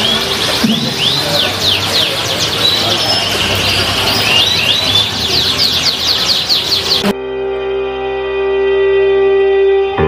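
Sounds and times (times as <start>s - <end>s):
canaries singing: 0.0s - 7.2s.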